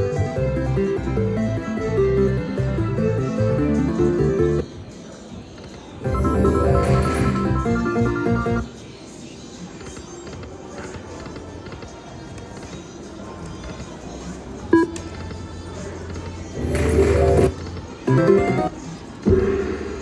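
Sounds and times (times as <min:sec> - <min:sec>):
slot machine electronic jingle: 0:06.0 - 0:08.6.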